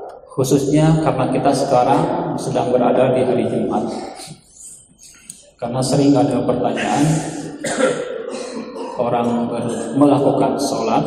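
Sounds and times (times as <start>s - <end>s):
man clearing his throat: 6.7s - 10.2s.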